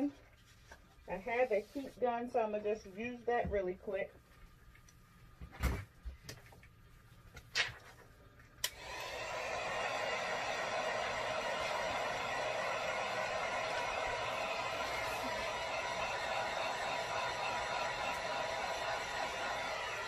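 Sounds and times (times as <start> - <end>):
heat gun blowing hiss: 8.6 - 20.0.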